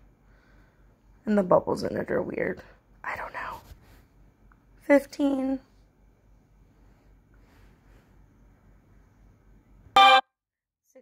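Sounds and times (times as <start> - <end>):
short horn-like tone: 10.0 - 10.3.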